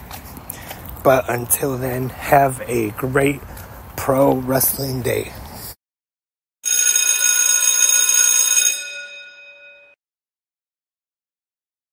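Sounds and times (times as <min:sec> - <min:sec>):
metallic bell ringing: 0:06.7 - 0:10.0.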